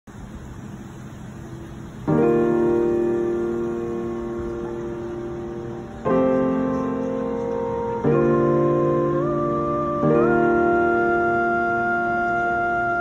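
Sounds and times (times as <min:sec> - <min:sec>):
faint background noise: 0:00.1 - 0:13.0
piano chord ringing: 0:02.0 - 0:13.0.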